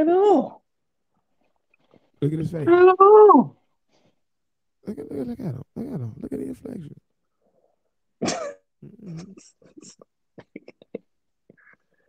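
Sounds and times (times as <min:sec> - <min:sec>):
person coughing: 0:08.2 - 0:10.9.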